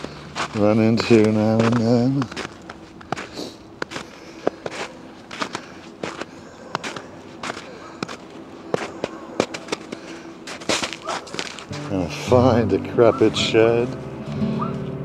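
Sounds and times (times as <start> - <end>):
footsteps crunching through snow: 0.0 - 14.5.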